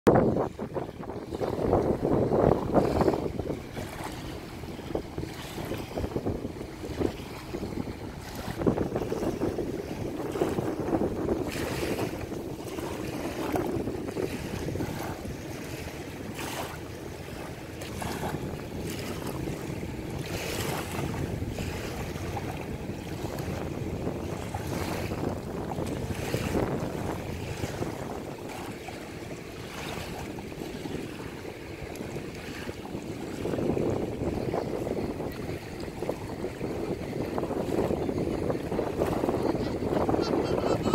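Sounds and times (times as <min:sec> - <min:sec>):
knocks and rustles of boat: 0:00.1 - 0:40.9
wind buffeting microphone: 0:00.1 - 0:40.9
small waves lapping: 0:00.2 - 0:40.9.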